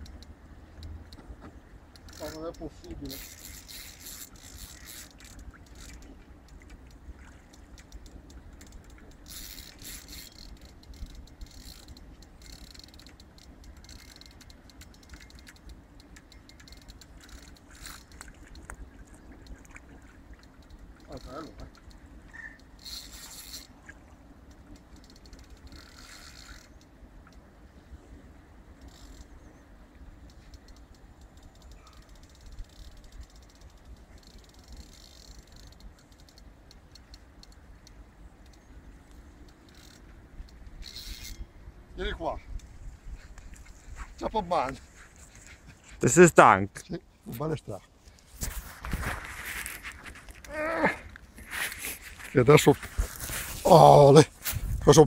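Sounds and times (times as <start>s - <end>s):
fishing reel spinning: 1.8s - 19.6s, 20.2s - 27.4s, 28.6s - 42.7s
low wind rumble: 35.8s - 44.2s, 47.9s - 55.0s
short voice sound: 50.5s - 51.0s.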